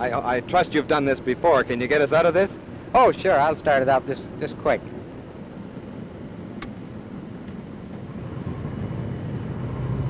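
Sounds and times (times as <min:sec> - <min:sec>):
airflow rushing past cabin: 0:00.0 - 0:10.0
radial engine drone: 0:00.0 - 0:10.0.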